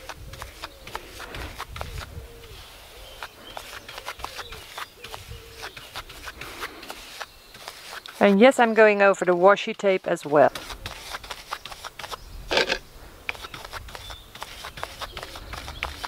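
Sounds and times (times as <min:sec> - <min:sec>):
paintbrush scrubbing over plastic drills: 0:00.0 - 0:16.0.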